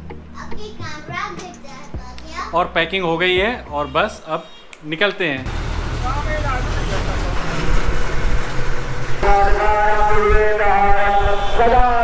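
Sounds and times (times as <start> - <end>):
bus engine and road rumble: 5.4 - 12.0.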